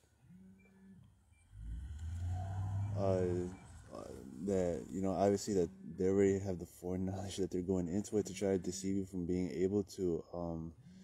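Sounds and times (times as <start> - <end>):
man humming softly: 2.4 - 9.7
man saying uh: 3.0 - 10.7.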